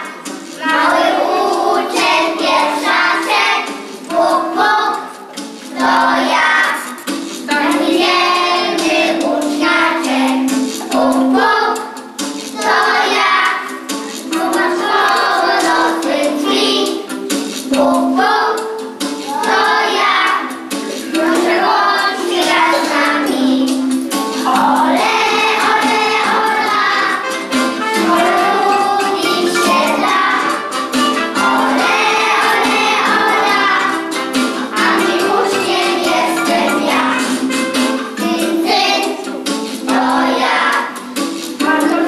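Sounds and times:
children singing: 0.0s - 42.0s.

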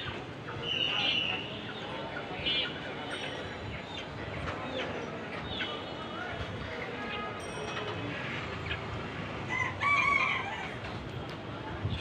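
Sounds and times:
market noise: 0.0s - 12.0s.

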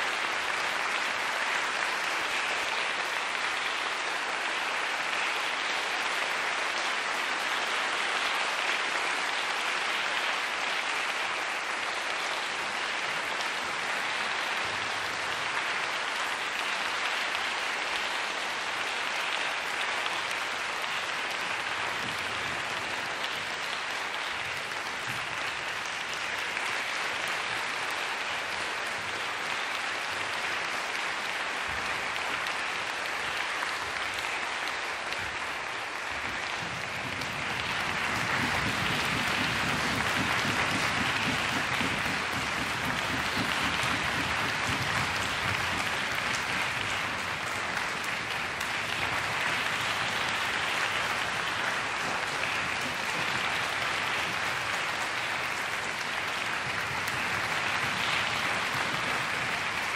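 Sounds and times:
audience applauding: 0.0s - 59.9s.

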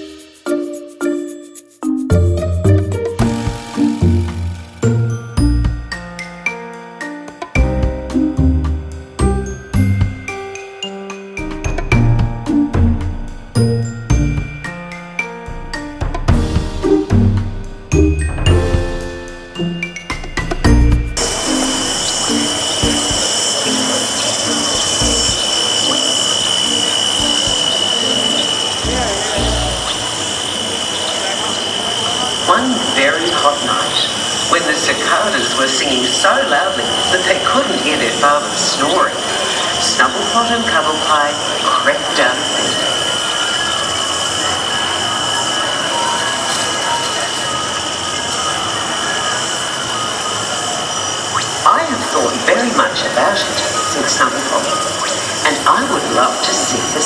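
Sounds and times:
cicadas droning: 2.1s - 10.7s, 18.0s - 57.0s.

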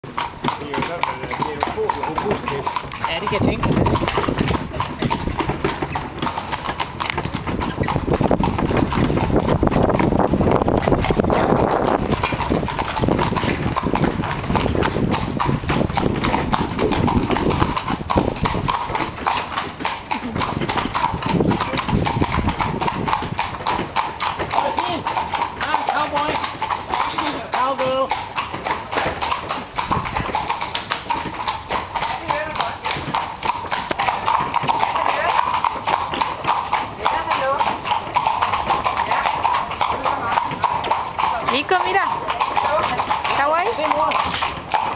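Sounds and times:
horse hooves on cobblestones: 0.0s - 44.9s.

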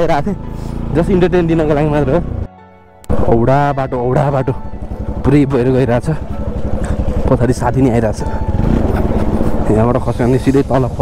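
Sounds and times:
motorcycle engine running: 3.1s - 11.0s
man talking: 7.2s - 8.4s, 9.5s - 11.0s.

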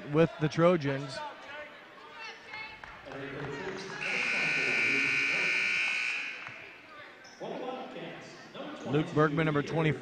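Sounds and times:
scoreboard horn blast: 4.0s - 6.5s.

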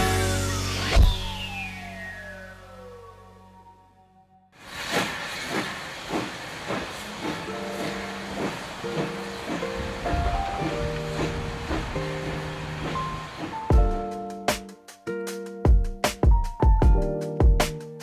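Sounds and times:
steam hissing: 4.6s - 13.8s
steam locomotive chuffing: 4.6s - 14.2s
background music with held notes: 7.6s - 18.0s.

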